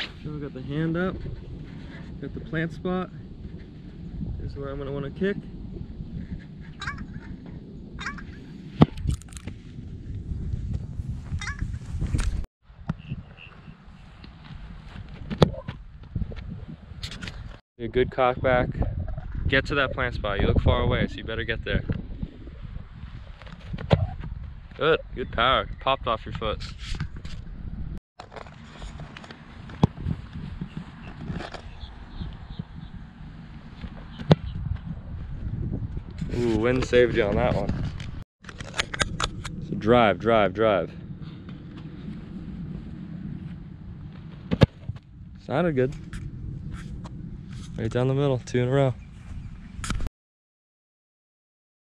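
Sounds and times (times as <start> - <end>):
wind on microphone: 0.0 - 50.1
football kick thuds: 34.1 - 34.9.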